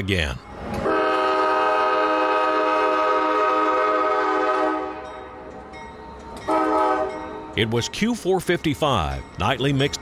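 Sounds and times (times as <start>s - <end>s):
approaching train: 0.0s - 10.0s
train air horn chord: 0.8s - 5.1s, 6.5s - 7.2s.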